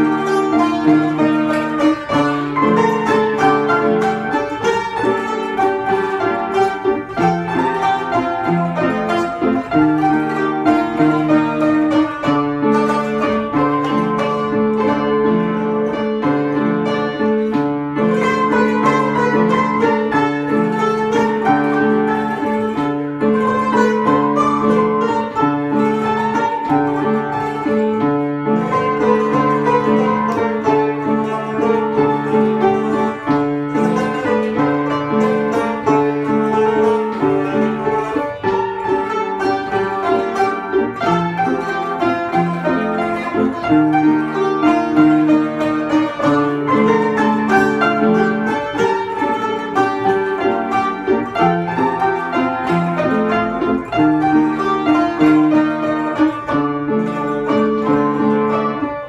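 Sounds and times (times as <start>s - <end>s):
piano accompaniment: 0.0s - 59.0s
plucked lute melody: 0.0s - 59.0s.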